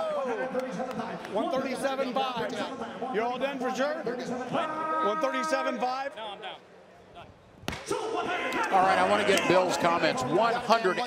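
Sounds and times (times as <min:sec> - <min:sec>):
auctioneer calling bids: 0:03.6 - 0:06.6.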